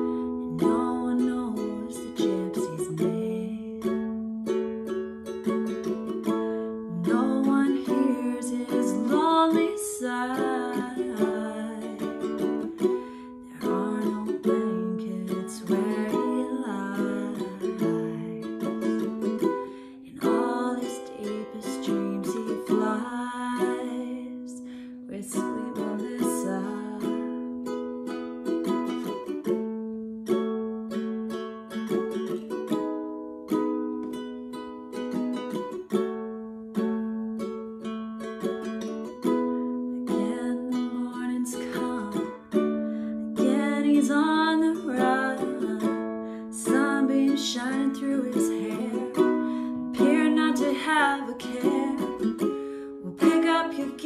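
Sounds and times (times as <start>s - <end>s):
ukulele playing: 0.0s - 54.0s.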